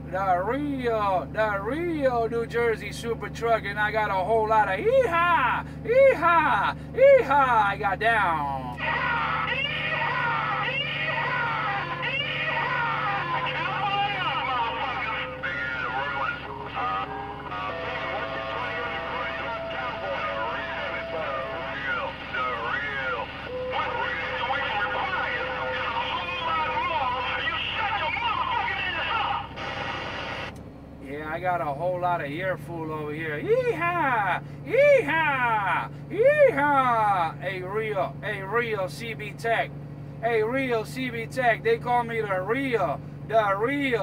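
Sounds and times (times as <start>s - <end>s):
garbled radio voices: 3.0s - 30.5s
radio whistles and squeals: 8.8s - 30.5s.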